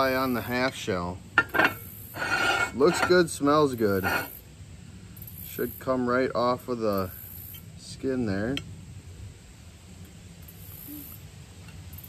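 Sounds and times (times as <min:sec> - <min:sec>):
high-pitched hiss: 0:00.0 - 0:12.0.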